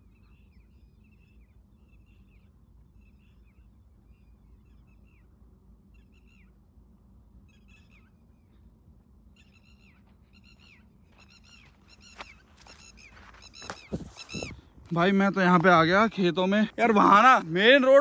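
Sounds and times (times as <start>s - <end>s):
birds calling: 7.5s - 18.0s.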